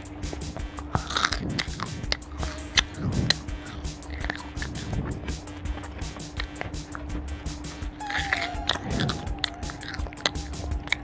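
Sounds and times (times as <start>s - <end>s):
chewing crunchy snacks: 0.0s - 11.0s.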